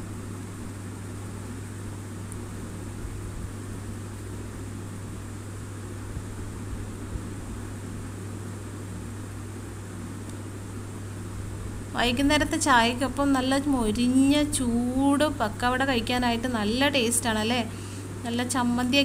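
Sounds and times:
constant low hum: 0.0 - 19.0.

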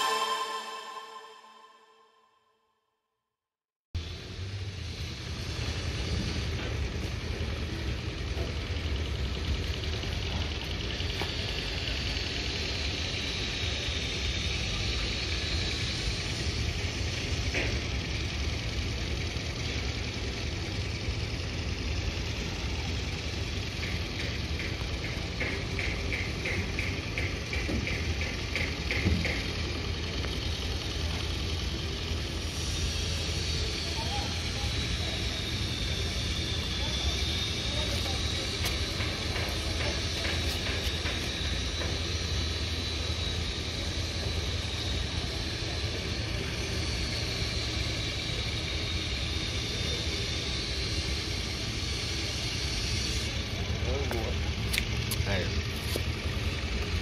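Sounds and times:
high chirping pulses: 0.0 - 2.3
high wavering whine: 0.0 - 2.3
low engine rumble: 4.0 - 57.0
machinery clatter: 23.0 - 30.7, 37.3 - 42.4.

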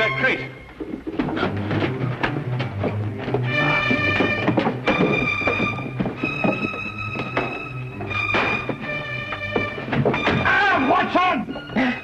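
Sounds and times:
heavy crate scraping and knocking: 1.0 - 10.5.

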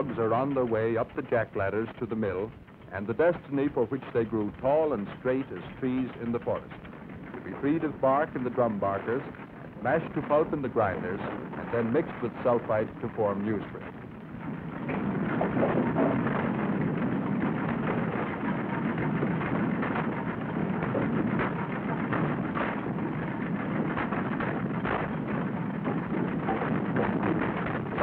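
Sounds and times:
logs knocking together: 0.0 - 28.0
machinery rumble: 0.0 - 28.0.

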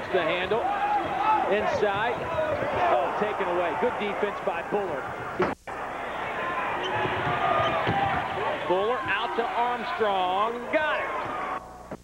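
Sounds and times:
arena crowd noise: 0.0 - 11.8.

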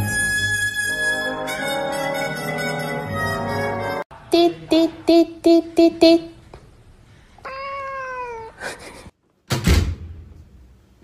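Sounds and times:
cat meowing: 7.4 - 8.6
loud thump: 9.5 - 10.4.

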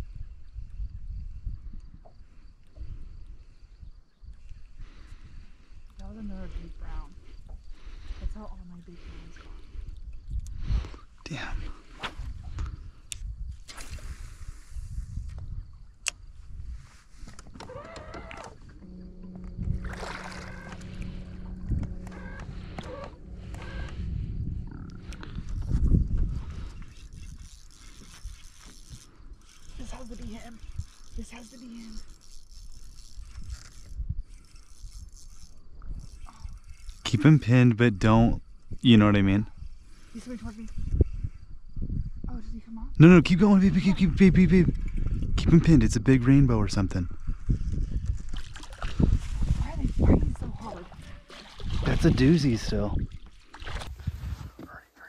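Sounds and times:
indistinct voices: 18.4 - 25.6
steady low rumble: 18.5 - 27.4.

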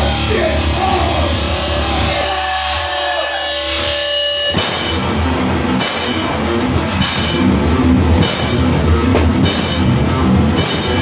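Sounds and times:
rock band playing: 0.0 - 11.0
cymbal crashes: 3.9 - 11.0.

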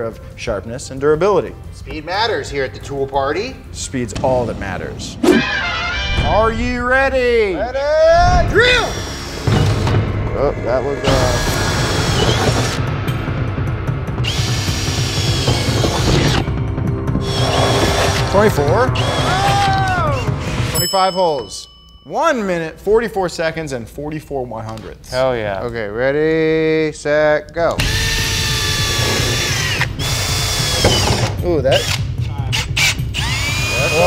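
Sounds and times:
cordless drill whining: 8.9 - 9.9, 11.1 - 12.8, 14.2 - 16.5, 17.2 - 19.8, 27.8 - 34.0.

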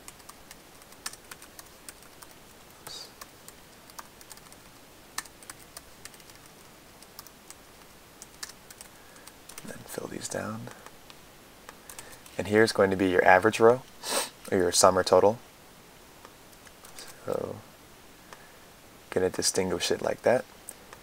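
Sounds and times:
keyboard typing: 0.0 - 9.8, 11.7 - 12.4.

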